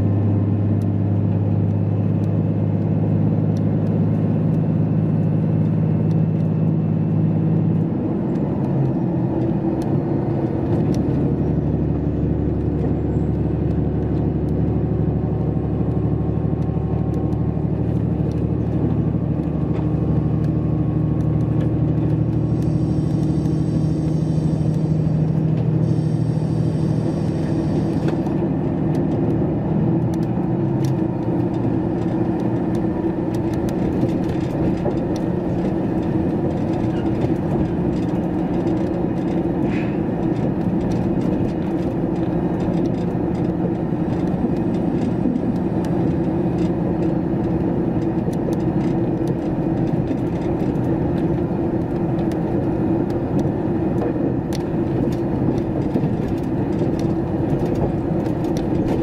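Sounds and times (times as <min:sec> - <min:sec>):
rumble on the rails: 0:00.0 - 0:59.0
train engine hum: 0:00.0 - 0:59.0.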